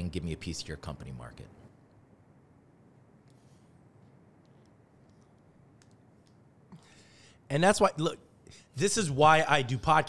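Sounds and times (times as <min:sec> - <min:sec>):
soft breath: 0:06.7 - 0:07.5.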